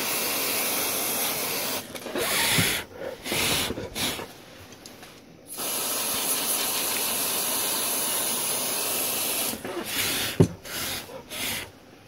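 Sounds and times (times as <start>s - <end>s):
aerosol spray hissing: 0.0s - 4.4s, 5.5s - 11.8s.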